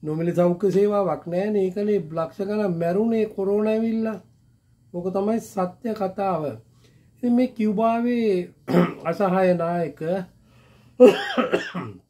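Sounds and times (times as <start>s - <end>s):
man coughing: 8.7s - 9.1s, 11.0s - 12.0s.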